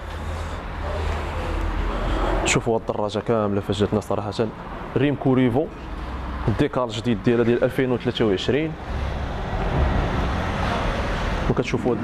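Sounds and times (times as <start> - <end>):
steady rumbling noise: 7.0 - 12.0.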